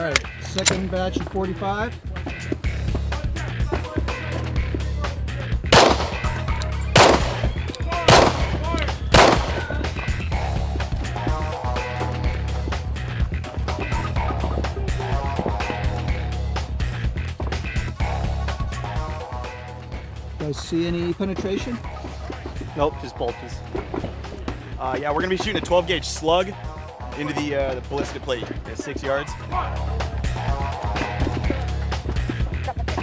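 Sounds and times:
background music with steady beat: 0.0 - 33.0
pistol shots: 5.7 - 9.8.

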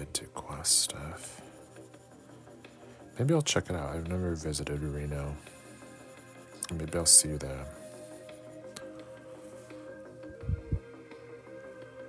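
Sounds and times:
quiet background music: 0.0 - 12.0.

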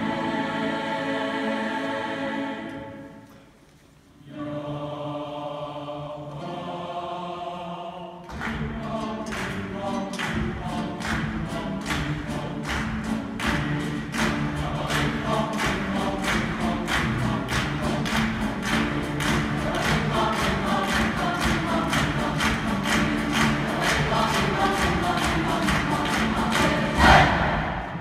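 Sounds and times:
large choir singing: 0.0 - 28.0
guitars brass and strings: 8.6 - 28.0.

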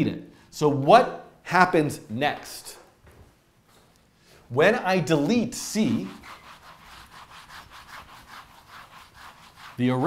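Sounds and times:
eraser scrubbing whiteboard: 5.6 - 10.0.

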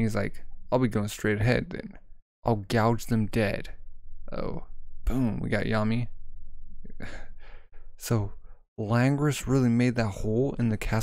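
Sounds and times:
man laughing softly: 6.9 - 7.4.

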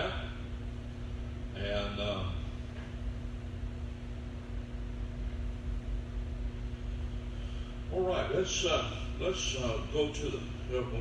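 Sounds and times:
electrical hum: 0.0 - 11.0
low room rumble: 0.0 - 11.0.

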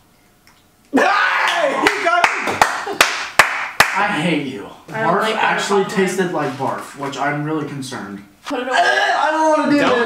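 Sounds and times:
group laughing and shouting: 1.0 - 3.0
sharp hand slaps: 1.5 - 4.0.

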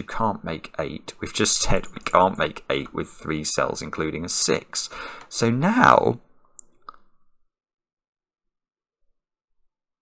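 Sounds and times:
man speaking: 0.0 - 6.2.

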